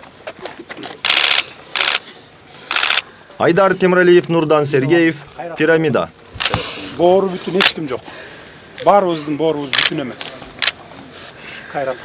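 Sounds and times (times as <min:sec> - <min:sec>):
camera shutters clicking rapidly: 0:01.0 - 0:02.0, 0:02.7 - 0:03.0, 0:06.4 - 0:06.6, 0:09.7 - 0:10.0, 0:10.6 - 0:10.8.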